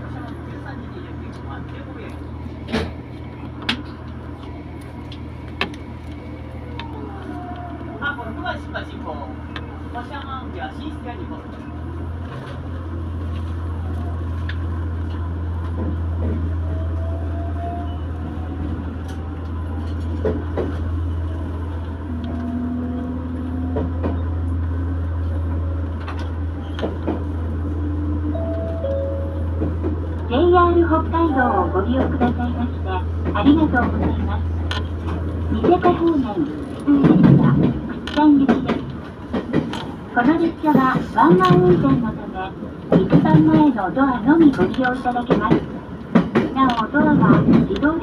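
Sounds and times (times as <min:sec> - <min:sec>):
diesel railcar engine drone: 0:00.0 - 0:48.0.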